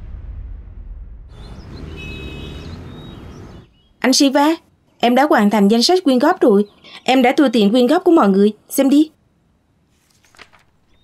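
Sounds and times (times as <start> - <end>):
high chirps: 1.3 - 4.0
faint outdoor ambience: 1.3 - 11.0.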